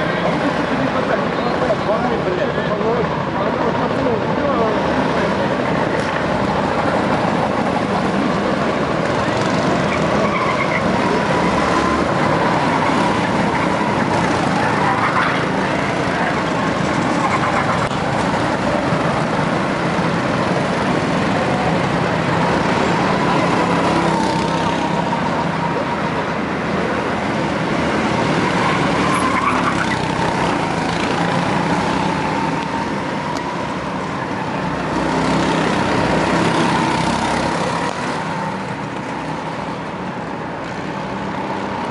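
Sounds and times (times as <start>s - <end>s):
go-kart engines whining: 0.0s - 41.9s.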